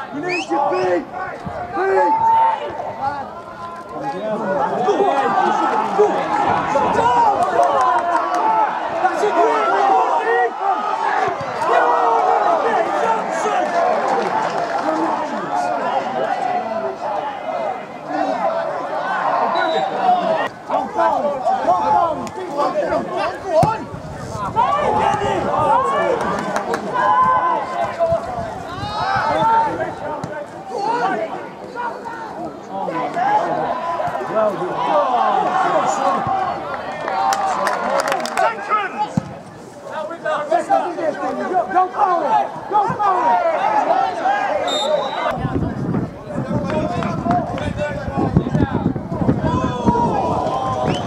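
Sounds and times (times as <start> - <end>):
men shouting and calling: 0.0 - 51.0.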